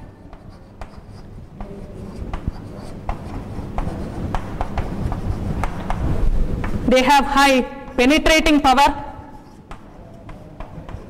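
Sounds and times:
chalk writing on blackboard: 0.0s - 6.8s, 9.2s - 11.0s.

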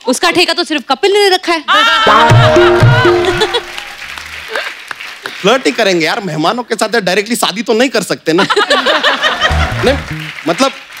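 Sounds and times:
comic bass music sting: 2.1s - 3.6s, 9.5s - 10.3s
audience laughter: 8.4s - 10.2s.

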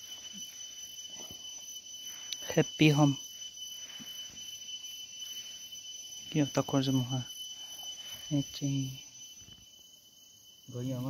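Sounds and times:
insect high-pitched whine: 0.0s - 11.0s
pulsing insect chirr: 0.0s - 11.0s.

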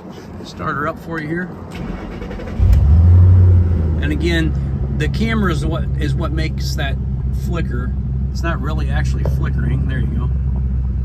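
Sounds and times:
car engine starting and revving: 1.7s - 7.4s.

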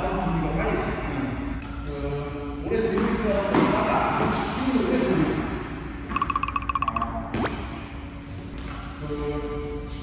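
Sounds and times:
high electronic blips: 6.1s - 7.3s.

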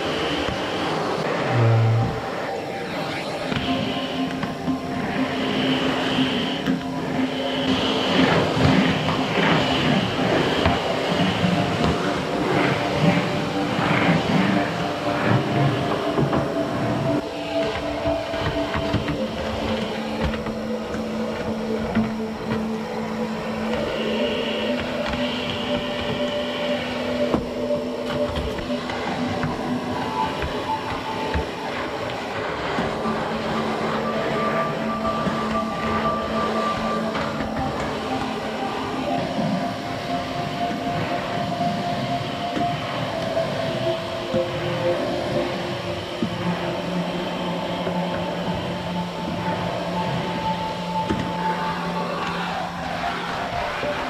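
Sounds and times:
soft background music: 0.0s - 54.0s
vacuum cleaner running: 0.0s - 54.0s.

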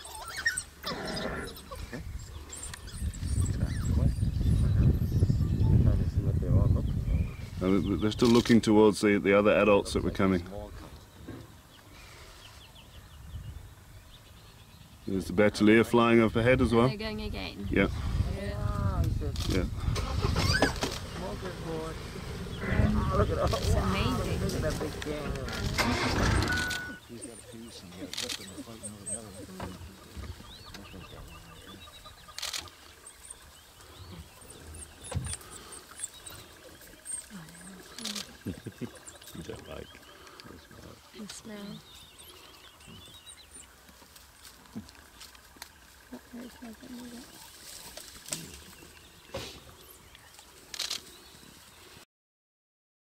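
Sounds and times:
voices: 15.1s - 43.1s, 46.0s - 49.7s
vehicle engine rumble: 17.8s - 51.1s
rustling in dry grass: 40.0s - 52.0s.

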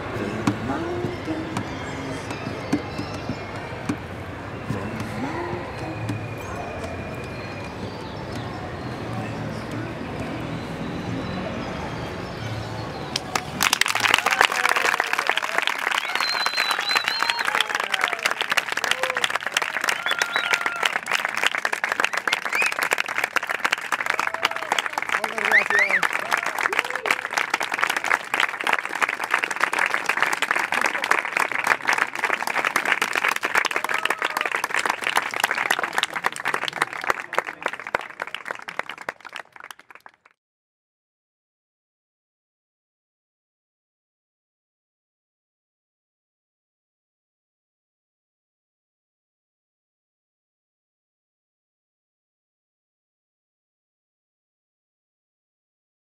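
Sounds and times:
audience cheering and whooping: 13.1s - 37.1s
audience applauding: 13.1s - 40.4s.

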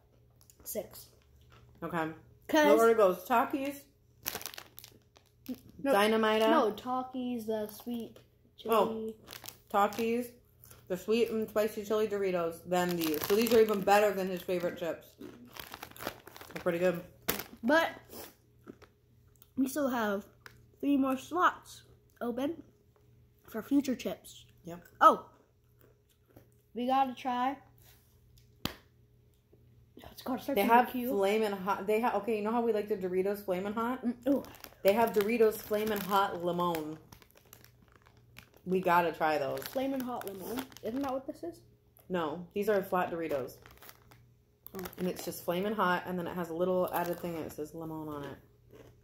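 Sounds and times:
faint steady hum: 0.0s - 49.0s
plastic chip bag crinkling: 2.7s - 6.8s, 8.8s - 17.7s, 33.6s - 41.4s, 42.8s - 49.0s.

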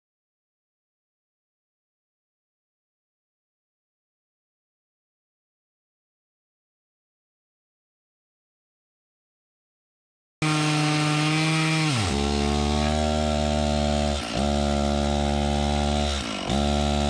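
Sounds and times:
chainsaw cutting concrete: 10.4s - 17.0s.

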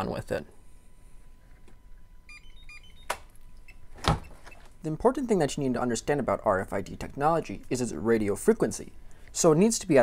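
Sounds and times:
electronic reader beeps: 2.3s - 4.6s.

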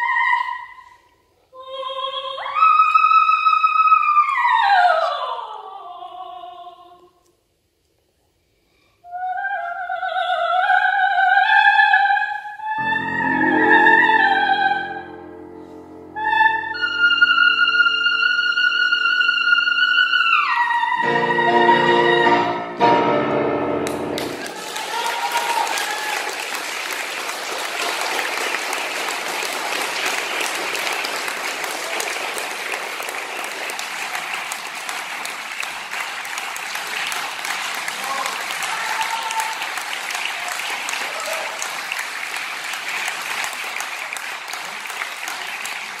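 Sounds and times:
audience applauding: 23.8s - 46.0s.

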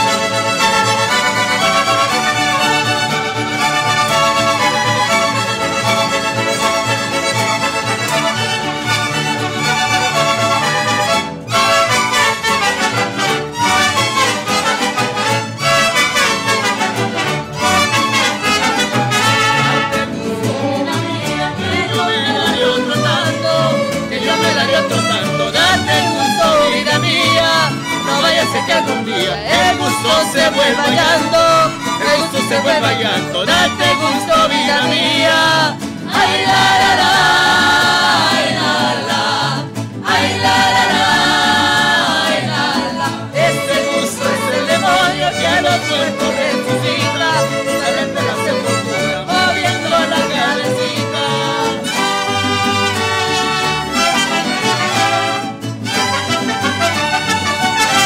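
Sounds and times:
strummed guitars: 0.0s - 58.0s
violins: 0.0s - 58.0s
trumpets holding long notes: 8.1s - 20.2s.

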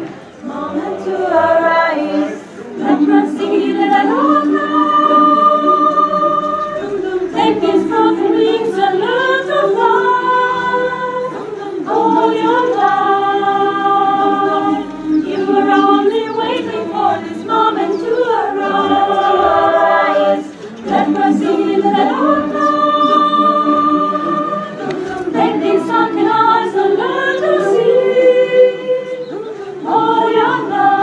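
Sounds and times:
mixed choir singing a cappella: 0.0s - 31.0s.

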